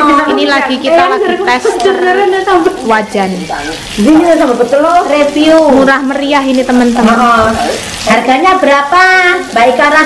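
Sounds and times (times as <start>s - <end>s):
food sizzling on grill pan: 0.0s - 10.0s
loud voices talking: 0.0s - 10.0s.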